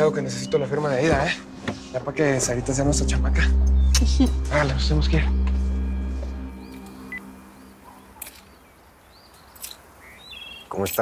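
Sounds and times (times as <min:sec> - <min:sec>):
background music: 0:00.0 - 0:09.7
birds chirping: 0:00.0 - 0:11.0.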